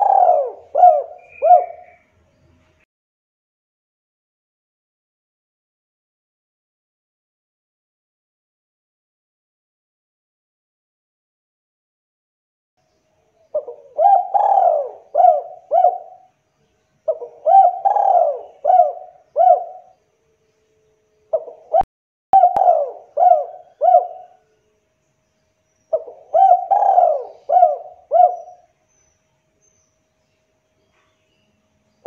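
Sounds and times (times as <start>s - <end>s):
dove cooing: 0.0s - 2.0s, 13.5s - 16.3s, 17.0s - 20.0s, 21.3s - 24.4s, 25.9s - 28.7s.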